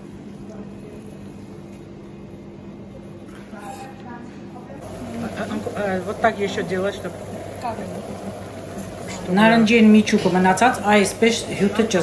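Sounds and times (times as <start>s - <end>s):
low hum and hiss: 4.0s - 12.0s.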